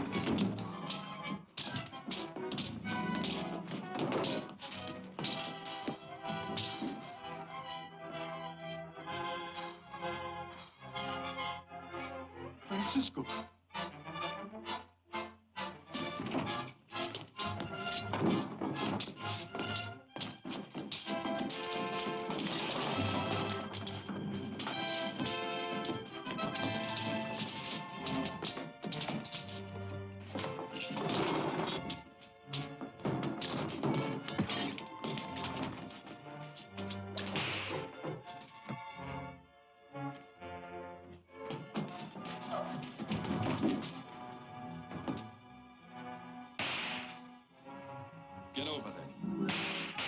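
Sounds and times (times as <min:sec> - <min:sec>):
orchestral film score: 0:00.0 - 0:50.0
fight blows and crashes: 0:17.4 - 0:29.6, 0:30.3 - 0:38.2, 0:46.6 - 0:47.2, 0:49.5 - 0:50.0.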